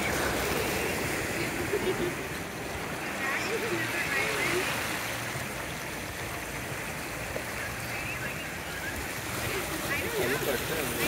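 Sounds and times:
faint voices: 0.0 - 11.0
small waves washing over pebbles: 0.0 - 11.0.

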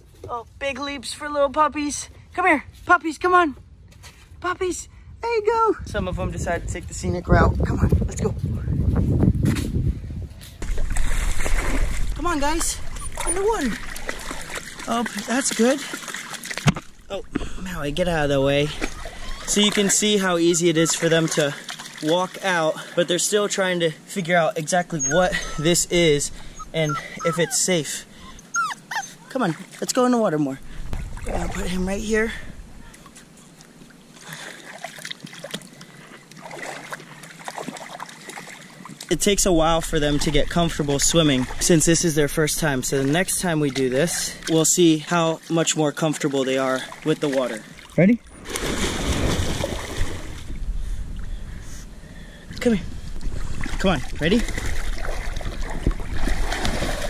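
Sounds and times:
wind on microphone: 3.7 - 14.8, 48.3 - 57.0
microphone handling noise: 5.8 - 14.5
puppy splashing in water: 10.6 - 23.4, 24.7 - 30.1, 30.9 - 32.2, 32.8 - 45.0, 46.0 - 50.5, 53.2 - 57.0.

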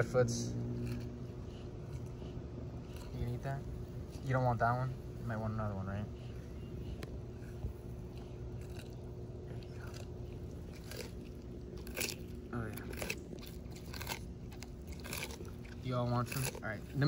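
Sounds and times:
tortoises crunching cucumber: 0.0 - 17.0.

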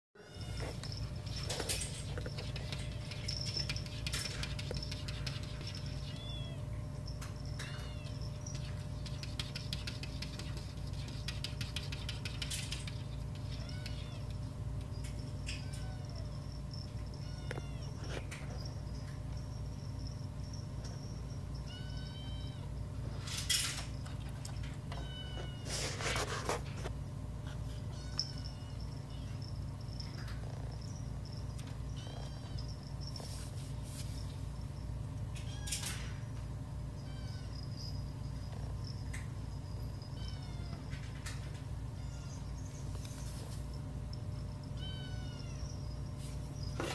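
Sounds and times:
kittens mewing: 0.2 - 6.9, 12.2 - 18.4
steady low hum: 0.2 - 46.9
claws scratching on glass: 0.7 - 6.4, 8.1 - 14.4.

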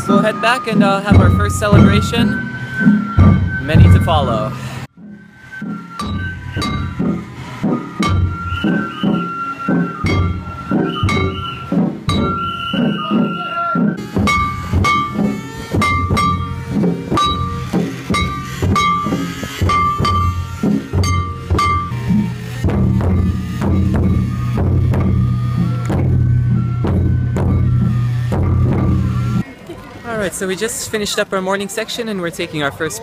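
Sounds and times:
large drum beaten with sticks: 0.1 - 29.4.

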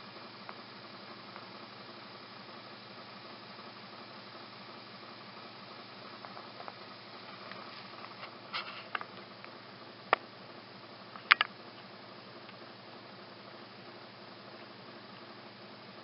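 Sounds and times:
faint hum: 0.0 - 16.0
room noise hiss: 0.0 - 16.0.

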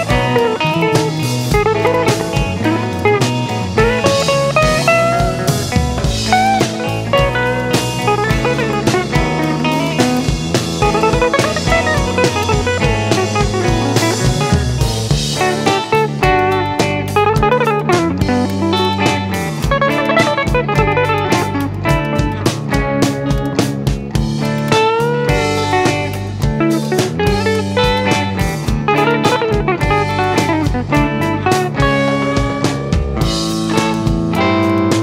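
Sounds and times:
bass: 0.0 - 35.0
drum kit steady beat: 0.0 - 35.0
guitars: 0.0 - 35.0
lead guitar solo with bent notes: 0.0 - 35.0.

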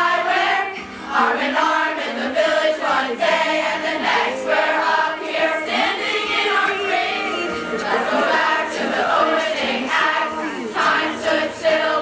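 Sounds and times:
choir of girls singing: 0.0 - 12.0.

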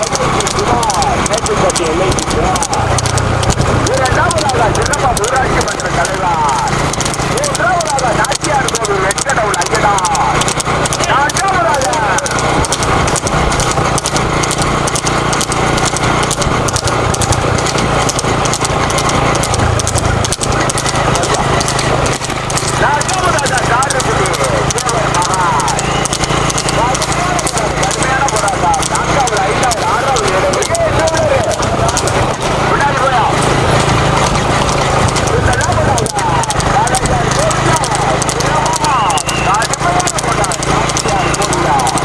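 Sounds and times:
horse hooves on paved road: 0.0 - 42.0
man calling: 3.8 - 12.3.

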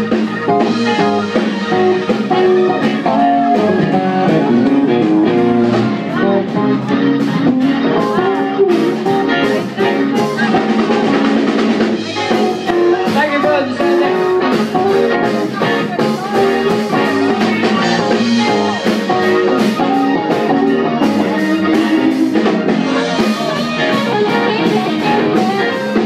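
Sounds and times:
band playing music: 0.0 - 26.0
drum strokes: 0.0 - 26.0
guitar: 0.0 - 26.0.

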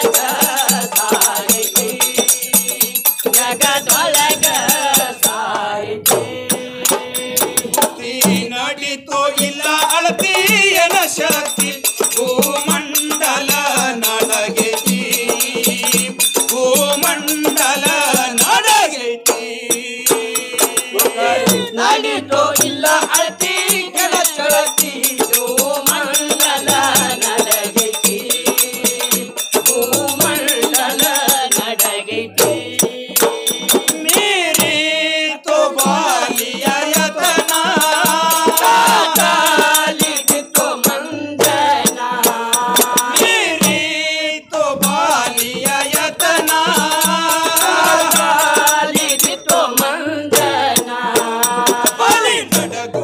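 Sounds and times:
men singing folk song: 0.0 - 53.0
rattling percussion: 0.0 - 53.0.

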